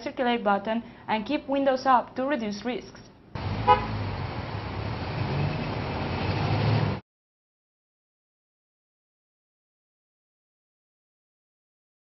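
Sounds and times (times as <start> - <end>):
road traffic noise: 3.4 - 7.0.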